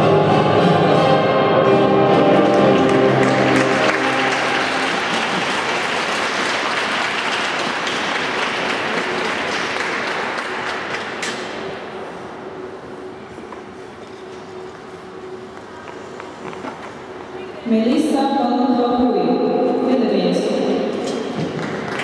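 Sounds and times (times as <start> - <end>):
classical orchestral music: 0.0 - 11.0
audience applause: 2.2 - 11.7, 21.4 - 22.0.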